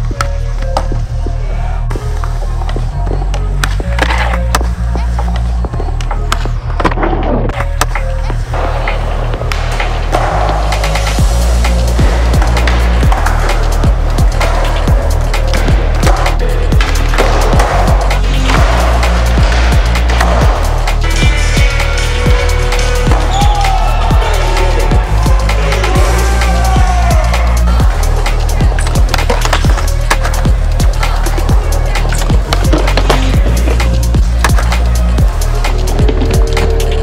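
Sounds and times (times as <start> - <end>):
music with heavy bass: 0.0 - 37.0
skateboard wheels rolling on concrete: 2.1 - 37.0
skateboard clacks: 28.2 - 34.8.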